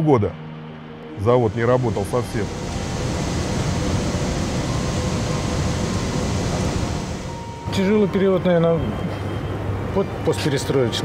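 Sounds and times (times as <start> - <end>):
faint steady hum: 1.2 - 8.9
industrial rushing noise: 1.3 - 8.4.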